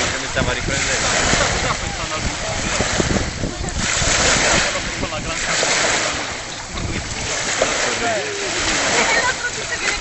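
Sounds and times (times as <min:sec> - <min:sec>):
sea surf washing: 0:00.0 - 0:10.0
wind on microphone: 0:00.0 - 0:10.0.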